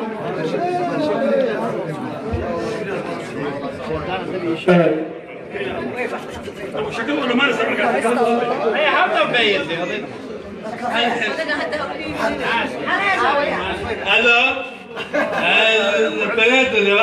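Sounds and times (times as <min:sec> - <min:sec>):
voices chattering: 0:00.0 - 0:17.0.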